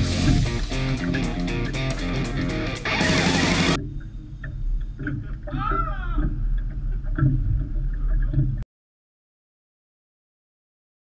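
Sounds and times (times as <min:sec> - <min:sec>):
boat noise: 0:00.0 - 0:08.6.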